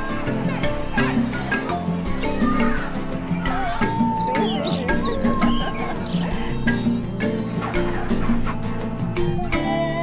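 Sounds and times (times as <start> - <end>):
wavering voices: 0.0 - 10.0.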